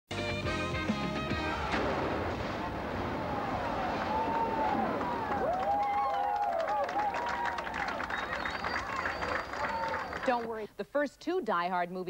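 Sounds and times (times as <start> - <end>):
rumbling explosion: 1.5 - 5.8.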